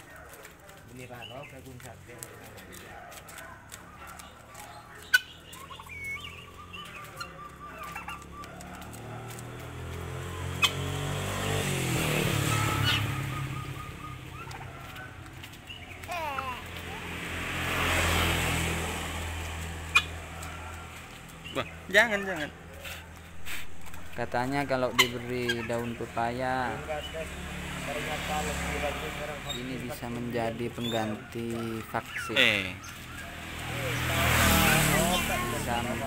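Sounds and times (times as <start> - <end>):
soft turkey calls: 0.1 - 9.4, 12.5 - 16.6
turkey gobbling: 4.0 - 9.4, 10.6 - 10.8, 12.5 - 15.1, 19.9 - 20.8, 21.4 - 26.0.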